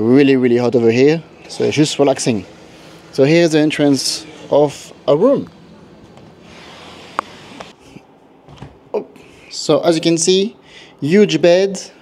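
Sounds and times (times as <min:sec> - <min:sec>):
glass door sliding: 0:01.4 - 0:07.8.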